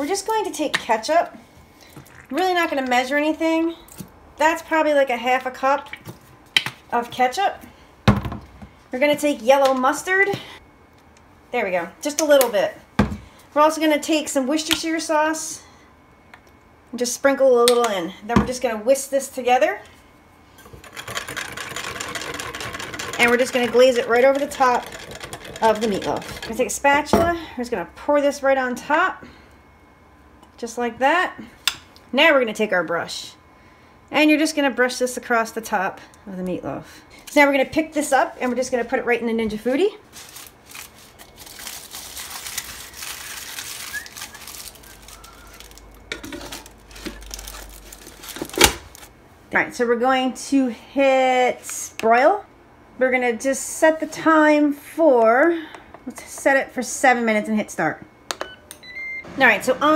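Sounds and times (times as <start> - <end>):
handheld electric whisk buzzing: 20.7 - 26.6
aluminium foil crinkling: 40.0 - 49.1.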